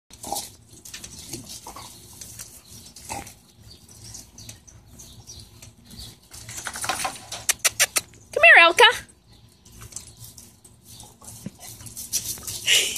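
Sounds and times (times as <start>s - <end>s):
dogs grunting: 0.1s - 2.1s, 2.7s - 4.1s
sharp clicks: 7.5s - 8.2s.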